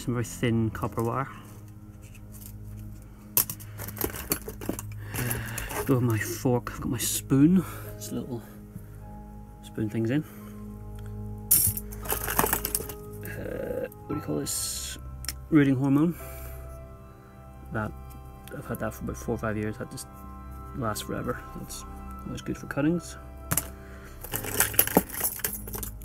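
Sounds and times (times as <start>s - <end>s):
soft background music: 0.0s - 26.0s
metal tools clinking in case: 3.4s - 6.0s, 11.5s - 13.1s, 23.5s - 26.0s.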